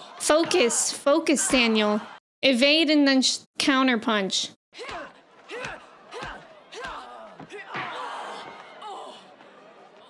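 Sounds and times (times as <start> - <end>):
grunts and shouts of fighters: 0.0 - 2.2, 4.8 - 10.0.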